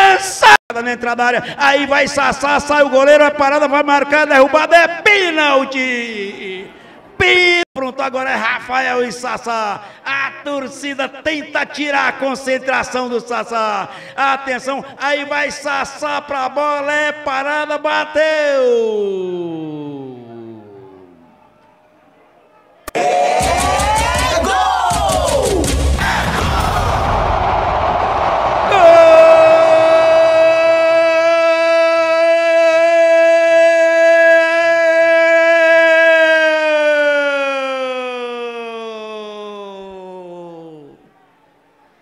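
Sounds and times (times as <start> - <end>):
crowd cheering and shouting: 22.9 - 34.0
commentator's long goal yell: 23.0 - 27.0, 28.6 - 41.0.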